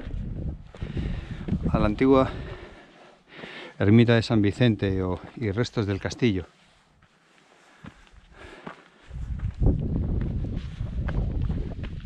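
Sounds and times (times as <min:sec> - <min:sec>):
footsteps on dirt and stone trail: 0:00.0 - 0:03.8, 0:04.6 - 0:12.0.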